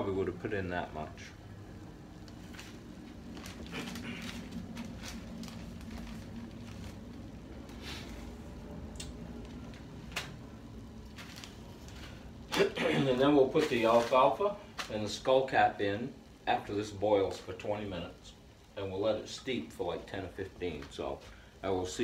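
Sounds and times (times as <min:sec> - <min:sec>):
plastic bag rustling: 0:02.2 - 0:15.0.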